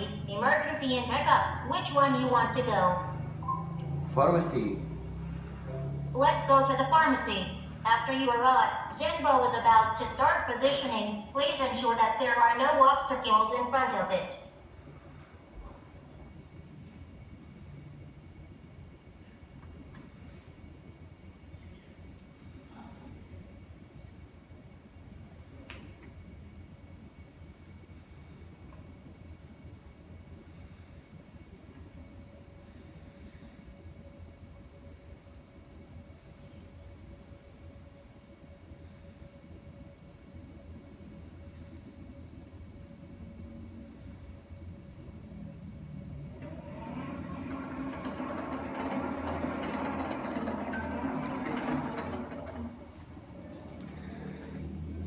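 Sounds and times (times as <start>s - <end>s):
thin high-pitched tone: 3.4s - 4.1s.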